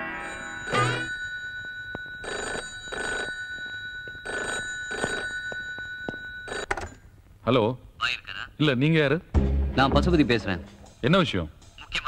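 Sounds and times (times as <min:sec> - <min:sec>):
telephone ringing: 0:00.0 - 0:07.1.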